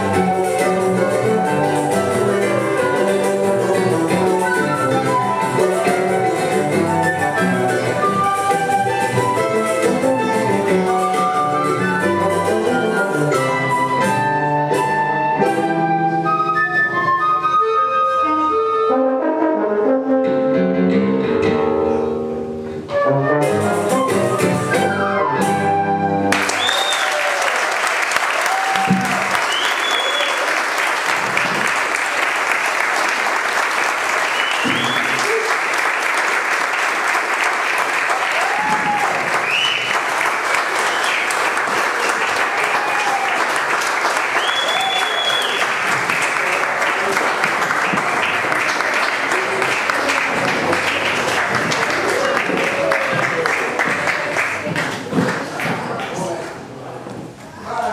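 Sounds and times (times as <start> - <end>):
ensemble with tuba and guitars: 0.0 - 26.3
audience applause: 26.3 - 56.5
whistles and cheers: 26.4 - 30.6, 34.2 - 35.5, 38.3 - 40.1, 40.8 - 41.4, 42.5 - 43.5, 44.3 - 45.8.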